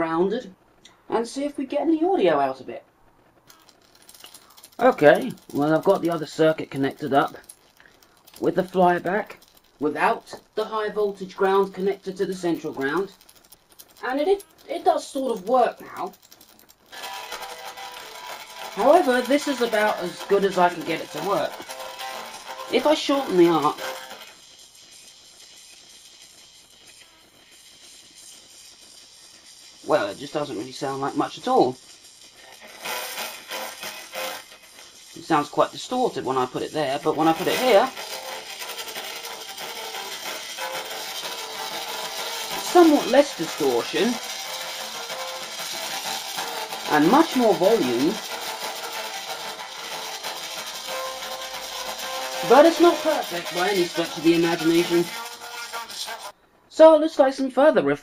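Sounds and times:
singing electric arc: 0.0s - 57.7s.

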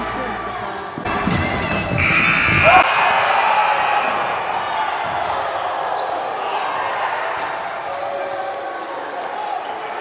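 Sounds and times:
crowd shouting in echoing hall: 1.8s - 10.0s.

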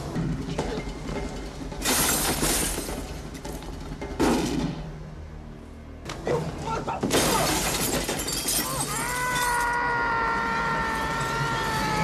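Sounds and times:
glass shattering crash: 1.8s - 3.0s, 7.1s - 9.8s
long high yell: 8.8s - 12.0s.

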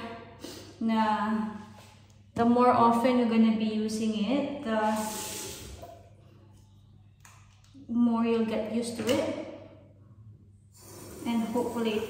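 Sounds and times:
water running from tap: 10.8s - 12.0s.

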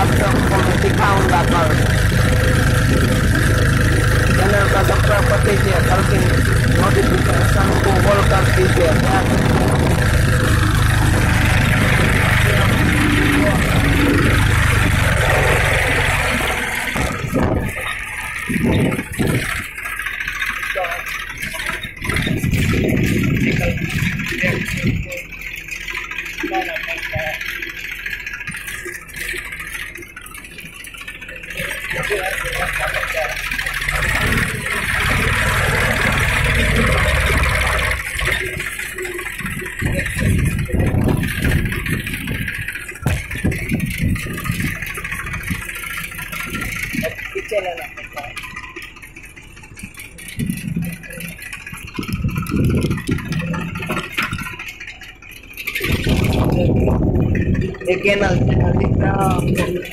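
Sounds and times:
tractor engine rumbling: 0.0s - 59.9s.

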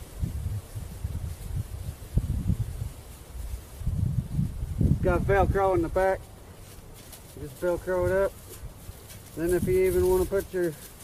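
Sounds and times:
rustle of leafy suit: 0.0s - 11.0s
wind rumbling on microphone: 0.0s - 11.0s.

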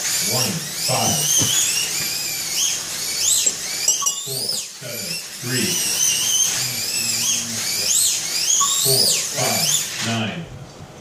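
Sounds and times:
slot car motors whining: 0.0s - 10.4s.

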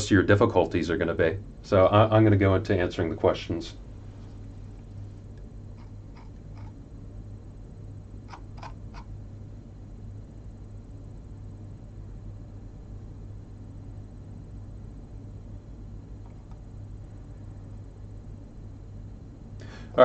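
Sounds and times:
low equipment hum: 0.0s - 20.0s.

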